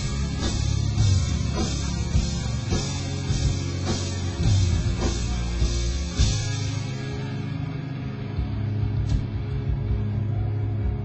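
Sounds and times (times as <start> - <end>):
drum and cymbal hits: 0.0 - 7.6
rock band playing: 0.0 - 11.0.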